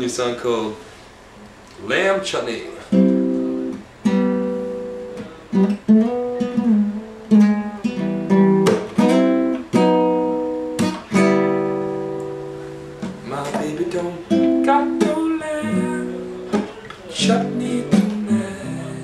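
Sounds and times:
classical guitar chords: 0:02.8 - 0:19.0.

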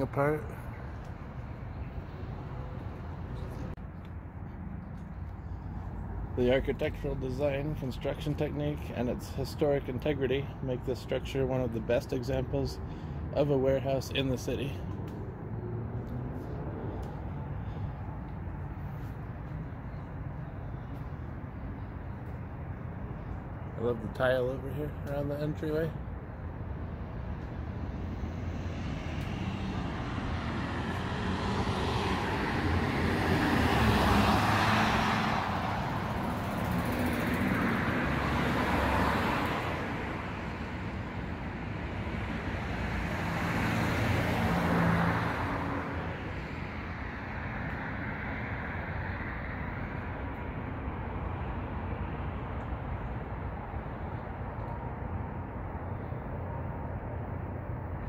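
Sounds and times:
cars passing: 0:00.0 - 0:58.0
road noise rumble: 0:00.0 - 0:58.0.

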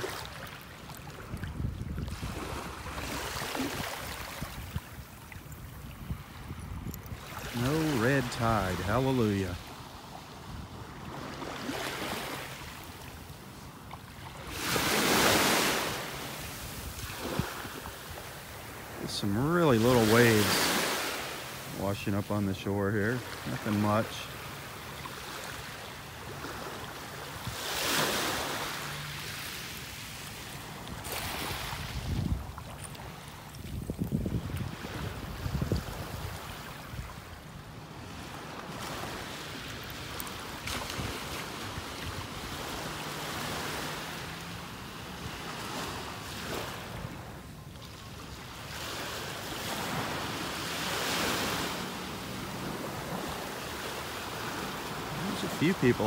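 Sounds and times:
gentle waves washing on sand: 0:00.0 - 0:56.0
wind rumbling on microphone: 0:01.1 - 0:07.6, 0:30.9 - 0:37.4.

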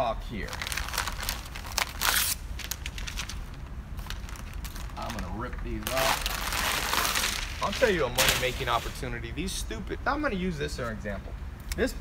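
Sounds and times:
paper sheets rustling: 0:00.5 - 0:09.1.

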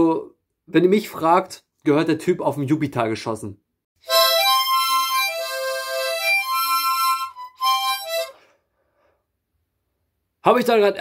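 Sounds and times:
harmonica playing held notes: 0:04.0 - 0:08.5.

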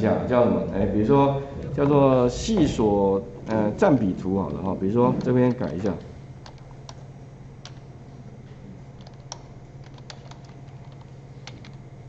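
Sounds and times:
steady low hum: 0:00.0 - 0:12.0
computer keyboard keystrokes: 0:05.2 - 0:07.0, 0:07.6 - 0:07.8, 0:09.0 - 0:11.8.

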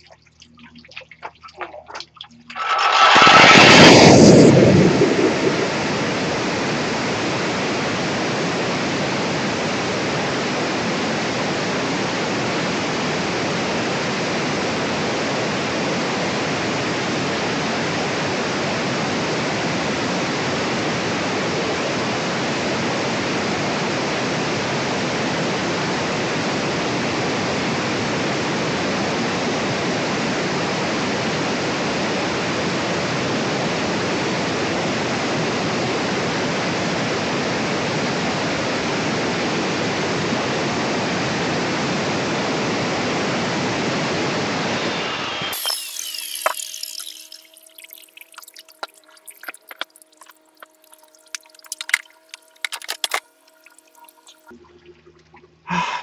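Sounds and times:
angle grinder cutting brick: 0:45.5 - 0:47.5.

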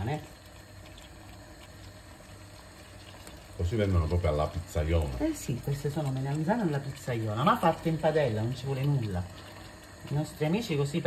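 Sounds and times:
sauce bubbling in a frying pan: 0:00.0 - 0:11.0.

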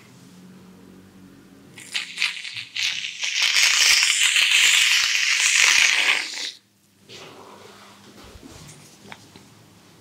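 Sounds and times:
aerosol foam can spraying: 0:01.8 - 0:06.6.

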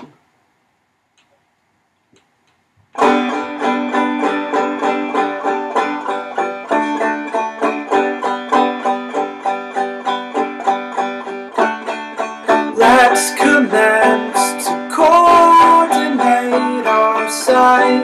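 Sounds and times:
banjo picking: 0:03.0 - 0:18.0.

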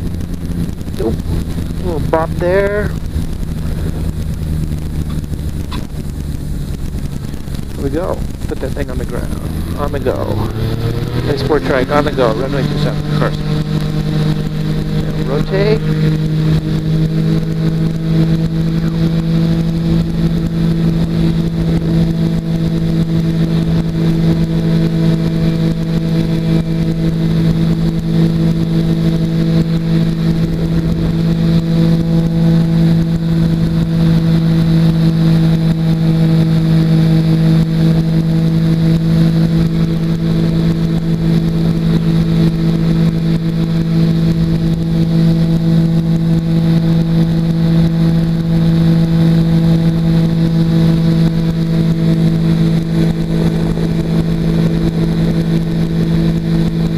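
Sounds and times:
aircraft engine and propeller drone: 0:00.0 - 0:56.9
rushing air: 0:00.0 - 0:56.9.

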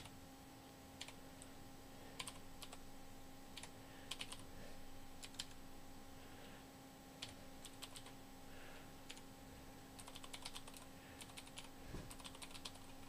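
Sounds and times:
low electrical hum: 0:00.0 - 0:13.0
keyboard typing: 0:02.2 - 0:02.8, 0:03.5 - 0:04.4, 0:05.2 - 0:05.6, 0:07.2 - 0:08.2, 0:10.0 - 0:13.0.

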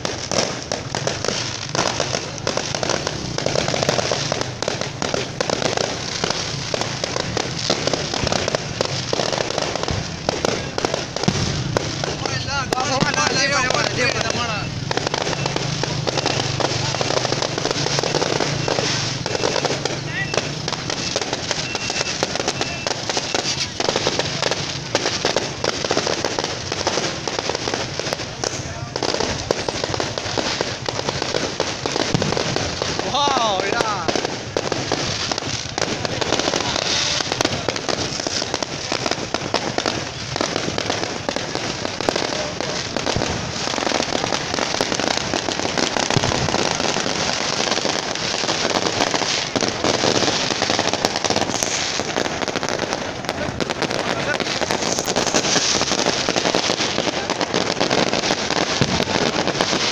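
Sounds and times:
fireworks banging and crackling: 0:00.0 - 0:59.9.

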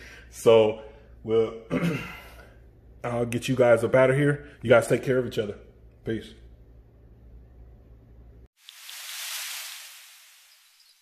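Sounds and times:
glassy tinkling: 0:10.4 - 0:11.0.

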